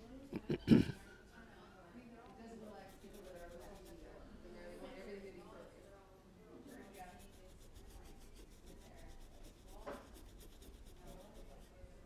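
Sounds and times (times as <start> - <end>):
paintbrush scrubbing on canvas: 2.6 - 5.6, 6.5 - 12.0.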